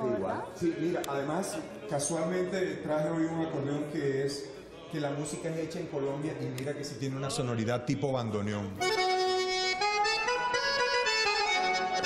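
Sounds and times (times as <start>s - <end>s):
accordion playing held chords: 8.8s - 12.0s.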